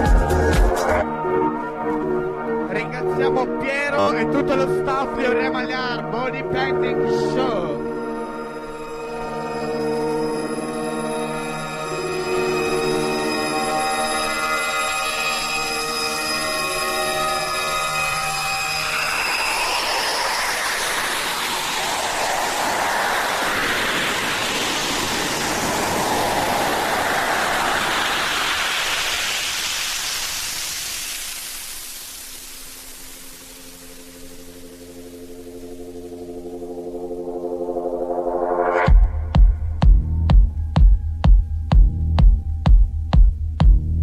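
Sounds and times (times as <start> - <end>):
synth chord with bass: 0.0 - 28.7, 32.0 - 40.8
synth chord: 0.0 - 29.2, 31.0 - 40.8
rushing noise sweep: 3.8 - 43.1.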